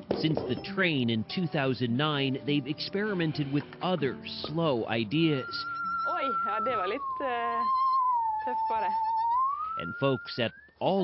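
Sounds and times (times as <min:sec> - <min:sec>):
bowed musical saw: 0:05.0 - 0:10.7.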